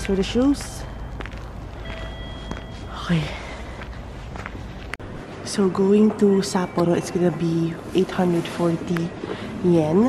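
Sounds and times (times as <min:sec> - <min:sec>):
footsteps on icy snow: 0:00.0 - 0:05.1
low background noise: 0:00.0 - 0:10.0.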